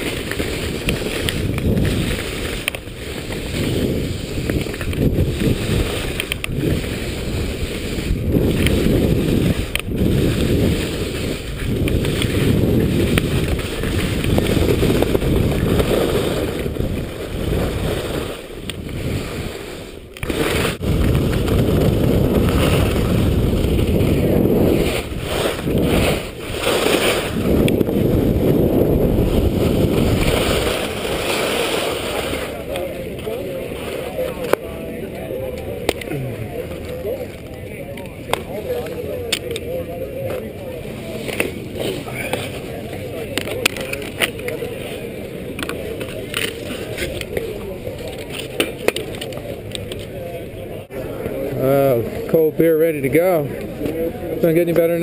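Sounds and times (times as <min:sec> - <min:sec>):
wind buffeting a camera: 0:00.0 - 0:31.6
background voices: 0:00.0 - 0:52.6
skis sliding over snow: 0:00.0 - 0:55.0.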